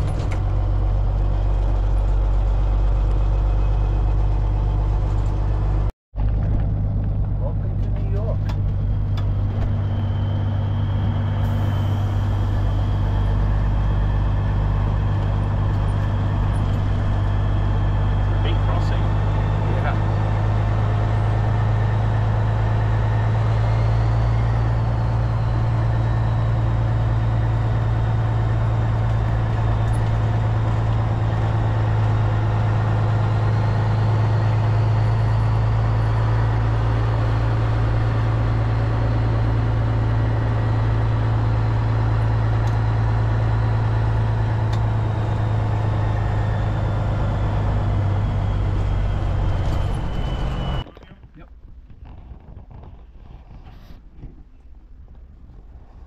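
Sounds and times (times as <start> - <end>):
diesel truck engine drone: 0.0 - 51.9
road noise: 0.0 - 56.0.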